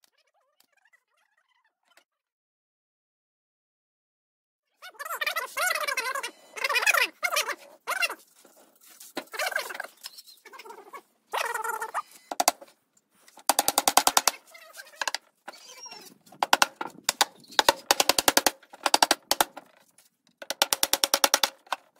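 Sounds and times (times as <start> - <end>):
fast rattling bird call: 13.5 - 19.5
birds wavering calls: 14.8 - 16.2, 17.2 - 17.9.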